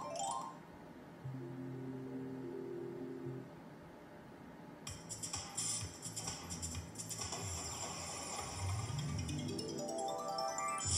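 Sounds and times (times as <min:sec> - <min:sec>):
slot machine high tones: 0:00.0 - 0:00.6, 0:09.2 - 0:10.9
slot machine tune: 0:00.0 - 0:00.6, 0:09.0 - 0:10.9
steady low tone: 0:01.2 - 0:03.8.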